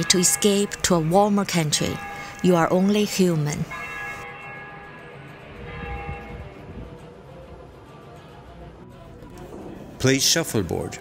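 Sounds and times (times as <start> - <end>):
bells ringing: 0.0 - 6.7.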